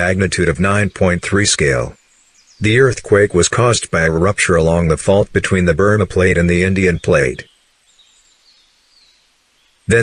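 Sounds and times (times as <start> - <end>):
person narrating: 0.0 - 2.0, 2.6 - 7.5.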